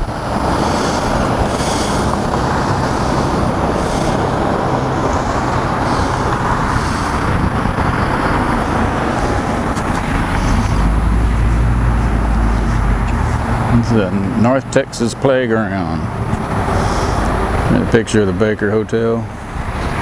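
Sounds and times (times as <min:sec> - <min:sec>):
heavy vehicle rumbling past: 0:00.0 - 0:20.0
road traffic passing: 0:00.0 - 0:20.0.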